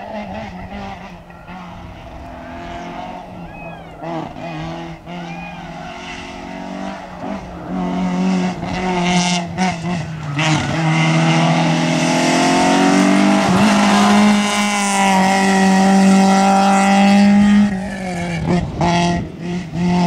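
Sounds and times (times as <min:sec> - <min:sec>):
rally car engine running hard: 0:00.0 - 0:20.0.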